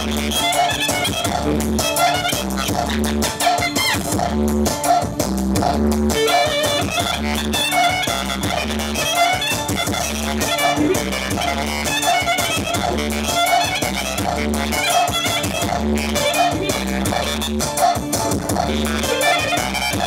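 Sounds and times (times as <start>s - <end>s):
clarinet melody: 0.0s - 4.2s, 6.1s - 17.7s, 18.6s - 20.0s
pulsing bass beat: 0.0s - 20.0s.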